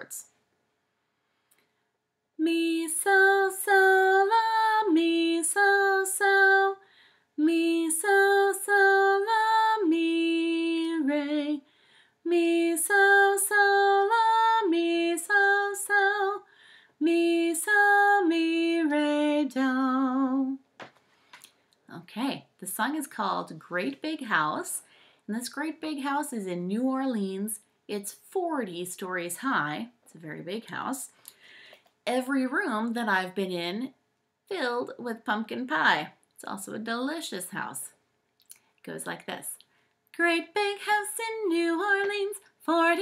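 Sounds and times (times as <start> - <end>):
woman singing unaccompanied: 2.4 - 6.8, 7.4 - 11.7, 12.3 - 20.6, 40.2 - 43.0.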